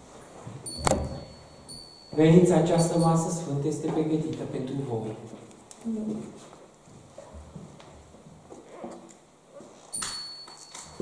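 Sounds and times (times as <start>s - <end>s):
metal clink with ringing tone: 0.6s - 3.5s, 9.9s - 11.0s.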